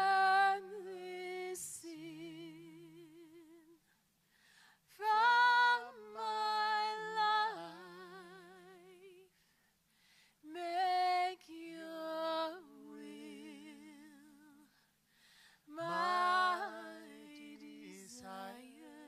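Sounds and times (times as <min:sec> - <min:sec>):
woman singing unaccompanied: 0:00.0 - 0:03.8, 0:04.9 - 0:09.3, 0:10.4 - 0:14.7, 0:15.7 - 0:19.0.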